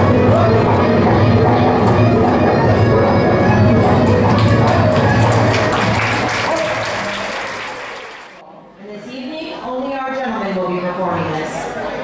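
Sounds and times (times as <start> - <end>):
folk-dance tune: 0.0 - 8.0
audience applauding: 3.6 - 8.4.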